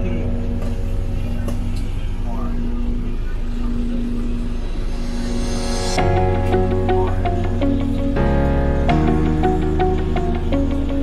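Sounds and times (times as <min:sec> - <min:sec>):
road noise: 0:00.0 - 0:11.0
vehicle engine drone: 0:00.0 - 0:11.0.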